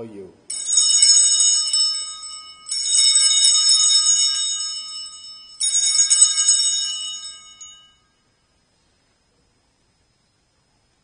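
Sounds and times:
small altar bells ringing: 0.5 - 8.6.

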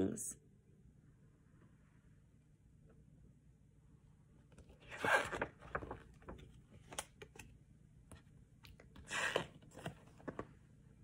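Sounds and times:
book pages turning: 4.4 - 10.6.

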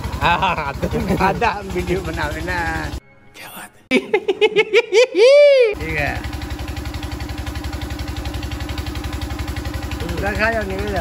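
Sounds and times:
engine humming with rapid pulse: 0.0 - 3.0, 5.2 - 11.0.

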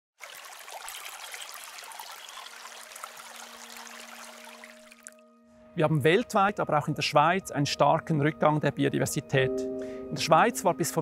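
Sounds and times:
running water trickling: 0.2 - 5.3.

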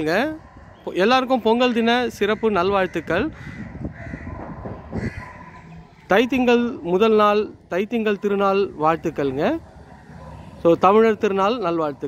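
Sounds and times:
bird calling: 0.0 - 7.0
faint outdoor background noise: 0.0 - 12.0.

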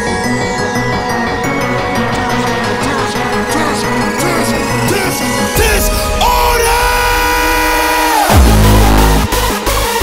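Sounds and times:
electronic dance music: 0.8 - 10.0.

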